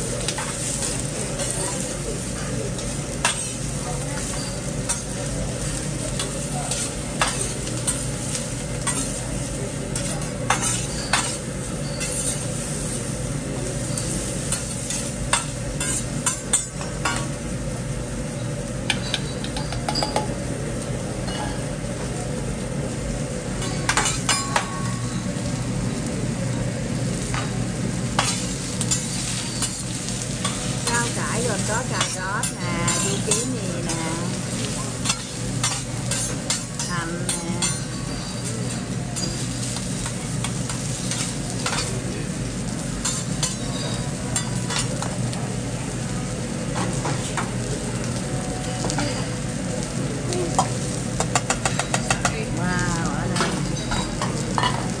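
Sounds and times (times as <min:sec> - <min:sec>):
vegetables sizzling on a griddle: 0:00.0 - 0:55.0.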